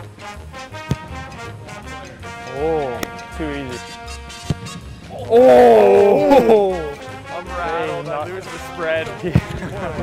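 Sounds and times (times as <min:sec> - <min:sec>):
swing music with brass: 0:00.0 - 0:10.0
football kicked off a tee: 0:04.4 - 0:04.9.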